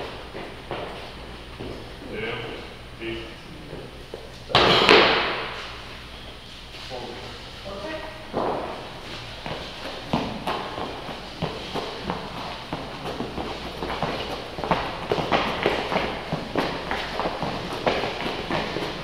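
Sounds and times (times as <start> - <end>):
thuds on rubber gym flooring: 4.5 - 5.6, 8.3 - 19.0.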